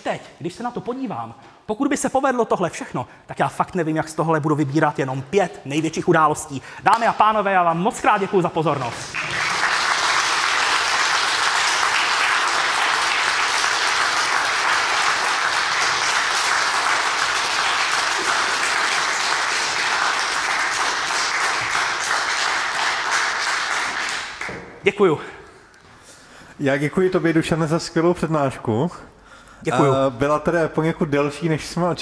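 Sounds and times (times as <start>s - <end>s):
audience applauding: 8.7s - 24.7s.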